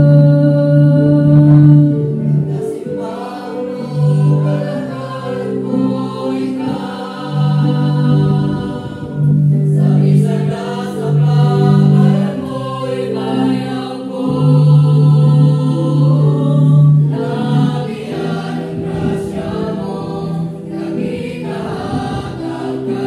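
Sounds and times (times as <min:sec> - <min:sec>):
mixed choir singing unaccompanied: 0:00.0 - 0:23.0.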